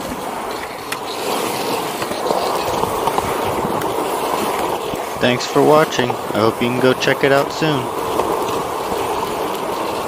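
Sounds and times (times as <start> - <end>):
skateboard wheels rolling on concrete: 0.0 - 10.0.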